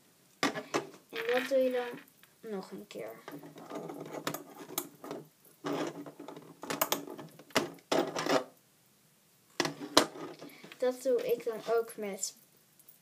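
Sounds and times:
rubber bands rubbing and scraping: 0.4 - 2.1, 3.2 - 8.6, 9.6 - 12.0.

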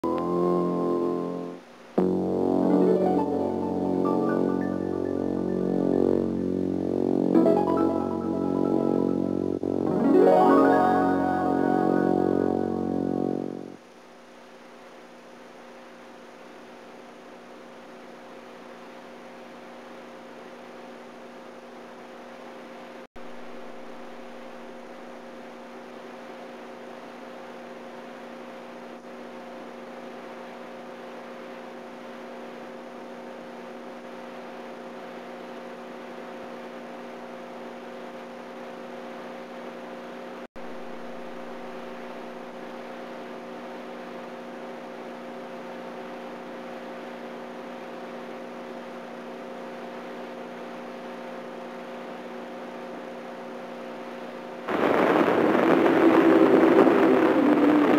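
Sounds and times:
electrical mains hum: 0.0 - 57.9.

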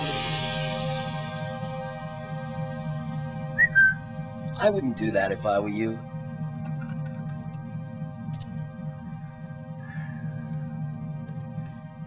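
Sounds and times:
held chord film music: 0.0 - 12.0
high whistle-like note: 3.5 - 4.2.

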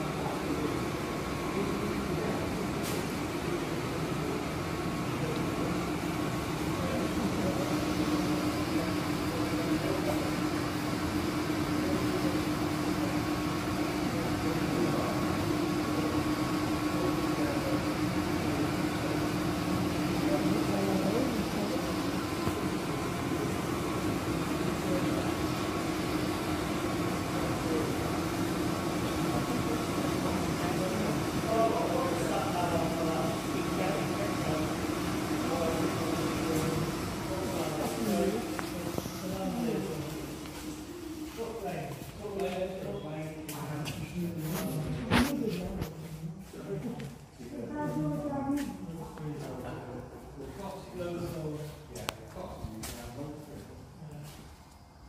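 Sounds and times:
faint voices: 0.0 - 54.5
people talking: 0.0 - 54.5
low mechanical hum: 0.0 - 55.0.

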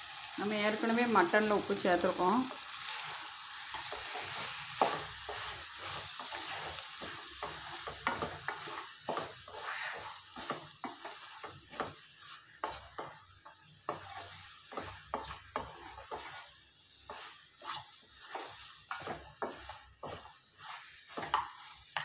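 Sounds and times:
masala sizzling: 0.0 - 22.0
spatula scraping a pan: 0.8 - 22.0.

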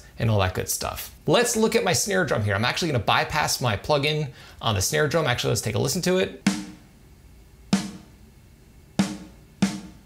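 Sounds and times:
snare drum hits: 6.5 - 6.8.

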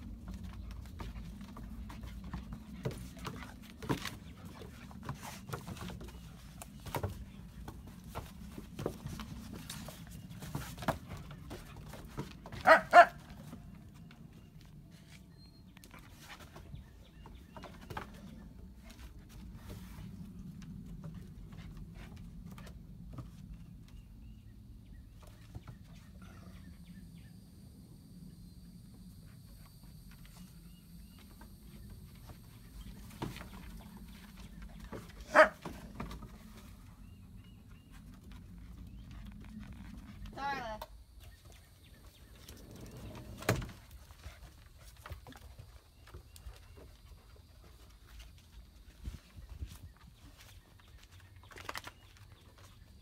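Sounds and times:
dog barking: 12.6 - 13.2, 35.3 - 35.6.

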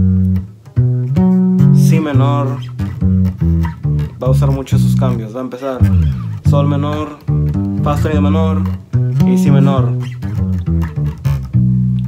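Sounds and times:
electric bass plucked: 0.0 - 12.0.

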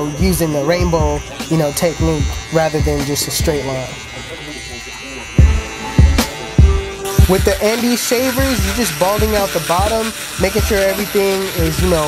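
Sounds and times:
hip-hop beat: 0.0 - 4.0, 5.1 - 12.0
hair trimmer buzzing: 0.0 - 12.0
heavy kick drum: 5.4 - 7.5.

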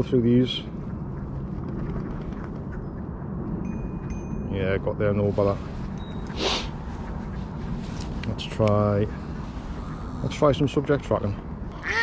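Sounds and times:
wind rumble on microphone: 0.0 - 11.8.

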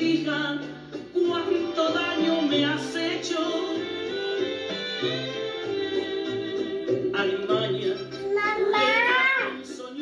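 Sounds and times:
recorded backing music: 0.0 - 10.0
girl singing: 8.2 - 9.8.

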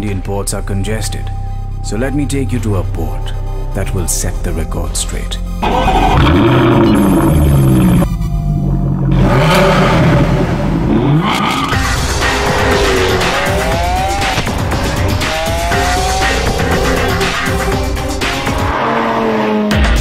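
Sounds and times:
background music: 0.0 - 20.0
sports car engine revving: 6.2 - 19.7.

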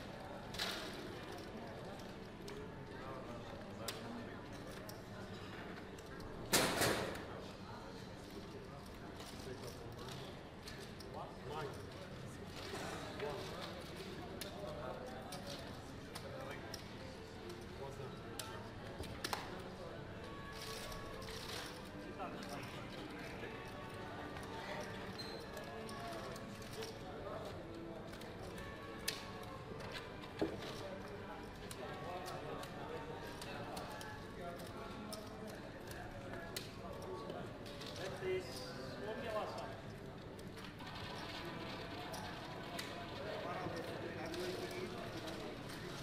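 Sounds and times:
background chatter: 0.0 - 46.0.

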